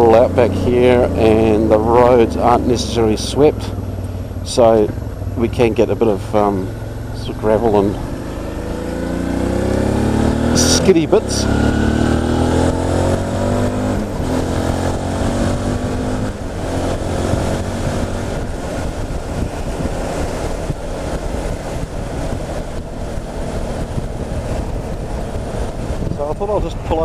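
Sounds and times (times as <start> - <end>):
motorcycle engine pulling away: 0.0 - 27.0
road noise: 0.0 - 27.0
wind noise: 6.5 - 27.0.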